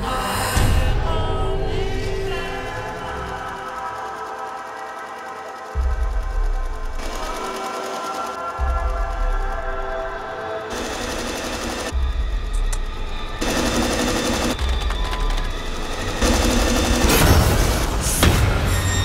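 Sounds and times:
trailer music: 0.0 - 19.0
sewing machine running fast: 6.8 - 8.4, 10.7 - 12.0, 13.4 - 17.9.

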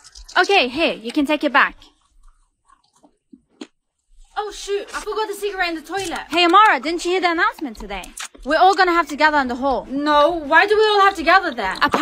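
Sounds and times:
soft chewing: 0.0 - 12.0.

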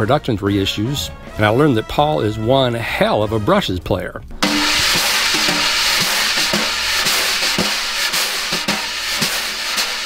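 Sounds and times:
wire brushes swishing on snare drum: 4.4 - 10.0.

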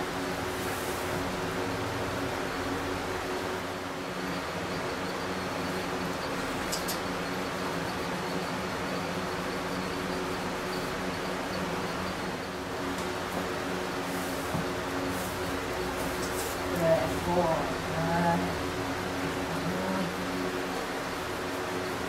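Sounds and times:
electric fans whirring: 0.0 - 22.0.

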